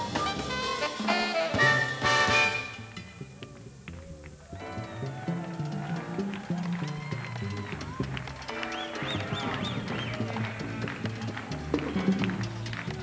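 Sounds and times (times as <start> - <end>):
congas: 0.0 - 13.0
piano: 0.0 - 13.0
upright bass line: 0.0 - 13.0.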